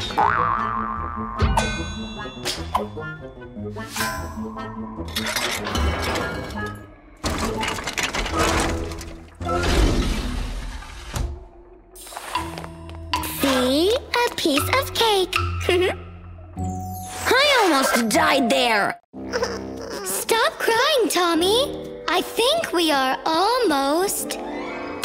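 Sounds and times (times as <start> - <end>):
cartoon springy boing: 0.0 - 1.8
background music: 0.0 - 25.0.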